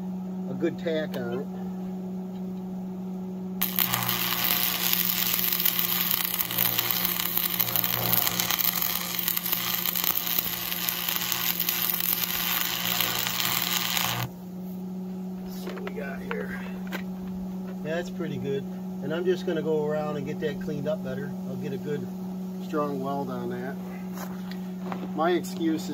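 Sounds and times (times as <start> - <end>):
welding arc crackling and sizzling: 3.6 - 14.3.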